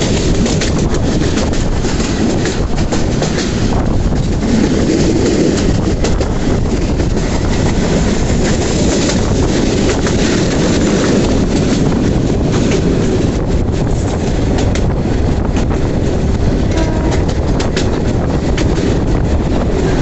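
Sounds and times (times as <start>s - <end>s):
clatter over rail joints: 0.0s - 20.0s
train wheels rumbling on rails: 0.0s - 20.0s.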